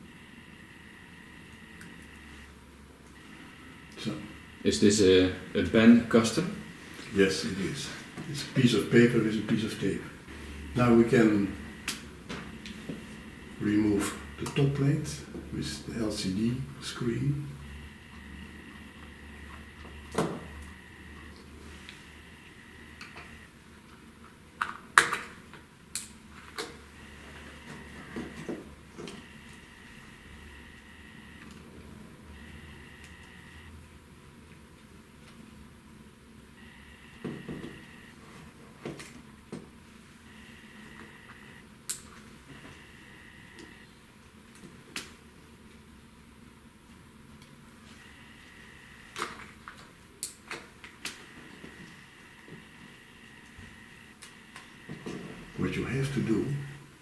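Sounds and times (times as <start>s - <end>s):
faint high steady tone: 0.0s - 23.5s, 32.2s - 33.8s, 36.6s - 38.2s, 40.3s - 41.7s, 42.5s - 43.9s, 51.2s - 57.0s.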